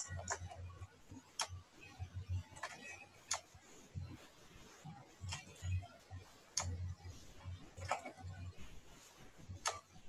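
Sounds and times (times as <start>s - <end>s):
computer mouse clicking: 0.0s - 0.7s, 1.3s - 3.5s, 5.2s - 5.8s, 6.5s - 6.8s, 7.7s - 8.4s, 9.5s - 10.0s.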